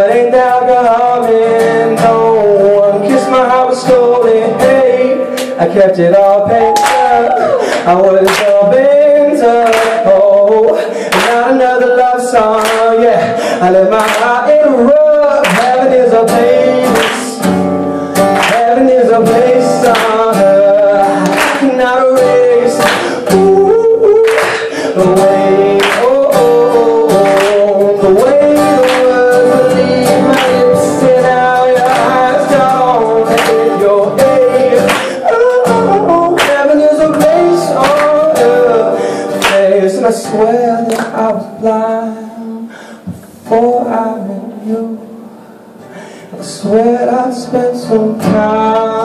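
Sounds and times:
man singing: 0.0 - 45.3, 46.2 - 49.0
strummed acoustic guitar: 0.0 - 49.0.

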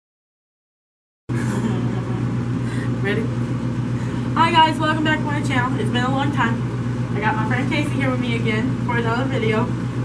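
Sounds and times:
kitchen equipment machine hum: 1.3 - 10.0.

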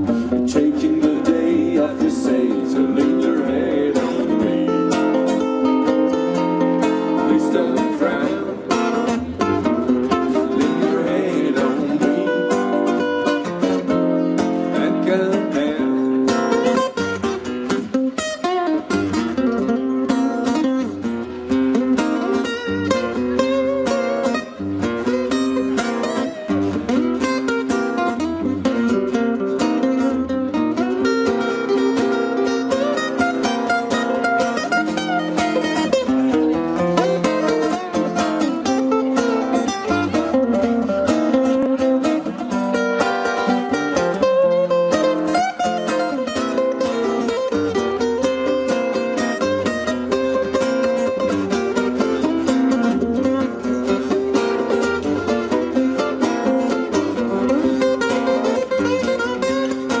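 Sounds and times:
amplified blues guitar: 0.0 - 60.0.

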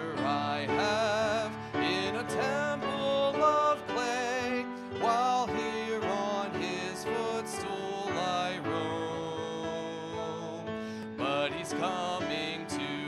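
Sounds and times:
congregation singing a hymn: 0.0 - 13.0
instrumental accompaniment: 0.0 - 13.0
man singing into a microphone: 0.0 - 13.0.

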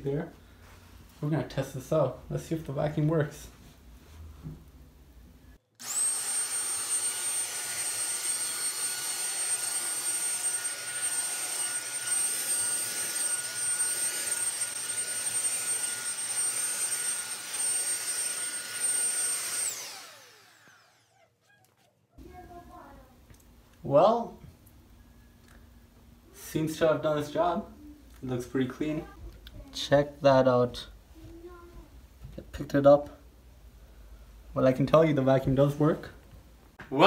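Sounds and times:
stick vacuum motor whining: 5.8 - 21.9.

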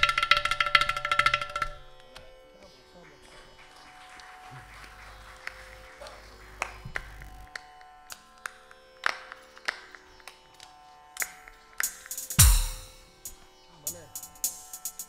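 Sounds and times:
electronic drum pad hits: 11.8 - 15.0.

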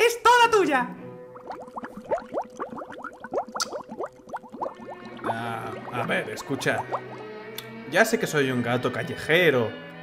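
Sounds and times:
cartoon bubbling blips: 1.4 - 7.3.

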